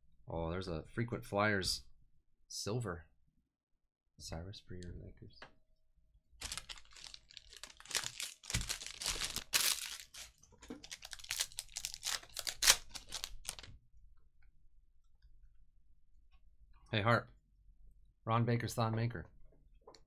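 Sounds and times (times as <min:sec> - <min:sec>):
foil wrapper crinkling: 0:06.4 - 0:13.7.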